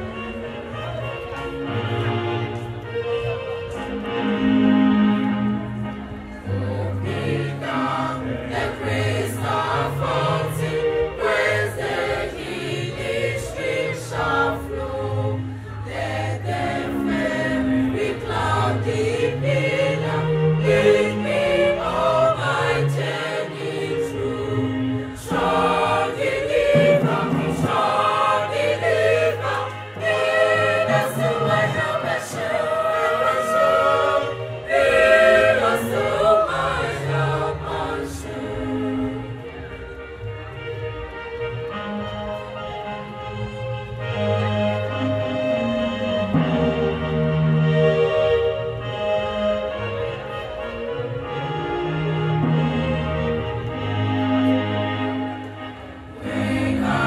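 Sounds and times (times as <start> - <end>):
choir singing: 0.0 - 40.5, 41.7 - 57.0.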